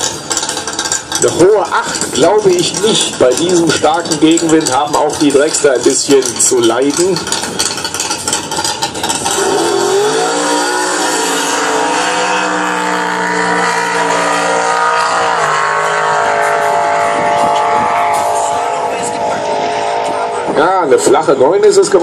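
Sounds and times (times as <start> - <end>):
drag car engine at full power: 0.0 - 22.0.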